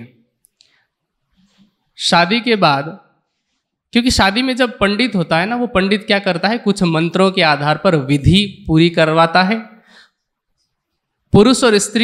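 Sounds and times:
man speaking: 0:02.0 - 0:03.2, 0:03.9 - 0:09.8, 0:11.3 - 0:12.0.

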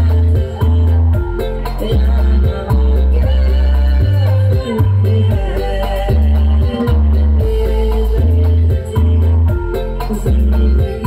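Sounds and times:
heavy bass notes: 0:00.0 - 0:11.0.

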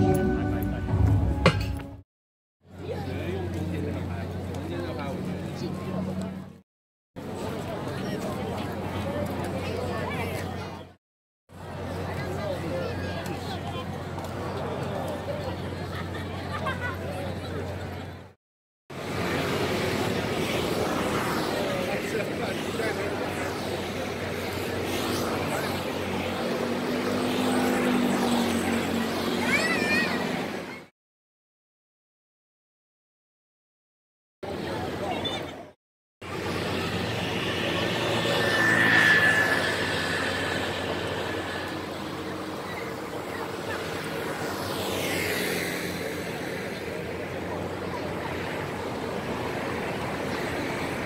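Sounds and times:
outdoor crowd voices talking: 0:00.0 - 0:02.0, 0:02.6 - 0:06.6, 0:07.2 - 0:30.9, 0:34.4 - 0:51.0
vehicles passing close by: 0:02.7 - 0:06.6, 0:07.2 - 0:30.9, 0:34.5 - 0:51.0.

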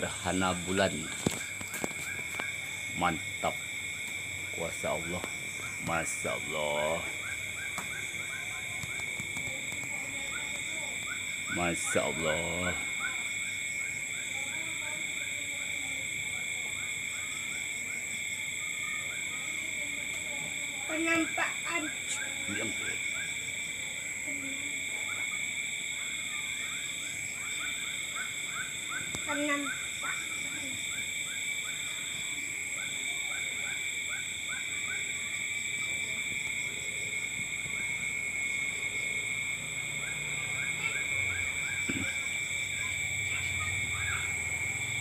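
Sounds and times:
fast short insect chirps: 0:00.0 - 0:14.3, 0:37.1 - 0:45.0
high-pitched ringing insect drone: 0:00.0 - 0:45.0.

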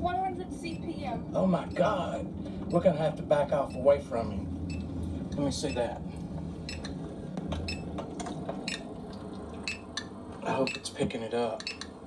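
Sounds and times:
vehicle cabin rumble: 0:00.0 - 0:12.0
geiger counter clicking: 0:07.6 - 0:10.9, 0:11.6 - 0:12.0.

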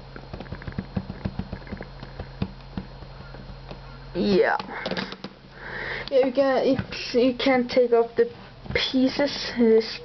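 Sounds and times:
sharp plastic knocks: 0:00.2 - 0:03.8.

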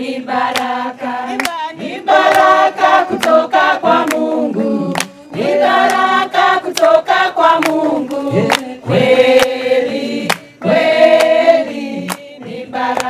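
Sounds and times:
group of voices singing: 0:00.0 - 0:13.0
hand claps: 0:00.3 - 0:13.0.

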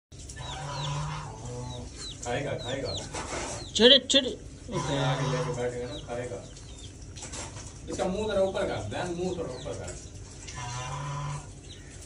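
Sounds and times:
chick peeping: 0:00.2 - 0:12.0.

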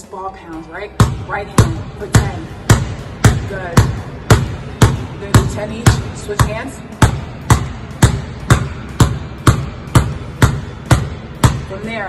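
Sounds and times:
basketball dribbling hard on floor: 0:01.0 - 0:12.0.

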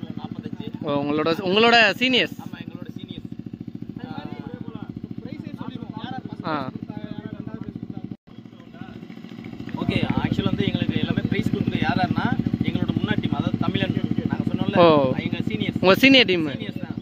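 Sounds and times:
small engine idling: 0:00.0 - 0:17.0
man talking: 0:09.8 - 0:17.0.

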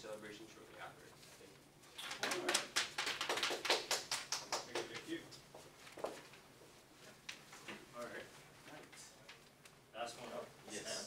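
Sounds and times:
group clapping: 0:02.0 - 0:05.2.

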